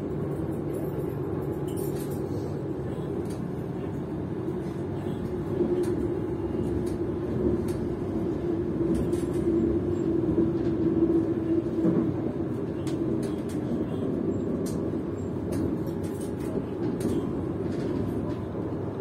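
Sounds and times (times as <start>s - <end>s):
train hum: 0.0s - 19.0s
train wheels rumbling on rail: 0.0s - 19.0s.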